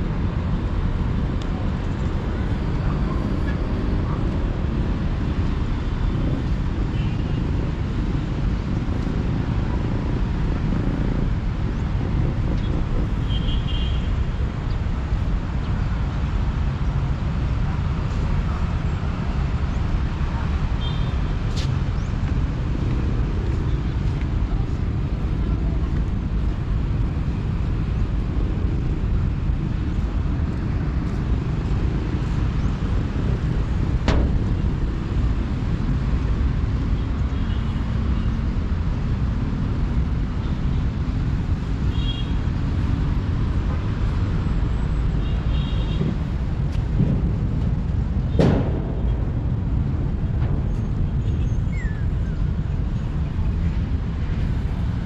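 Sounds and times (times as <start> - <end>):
distant traffic rumble: 0.0 - 55.0.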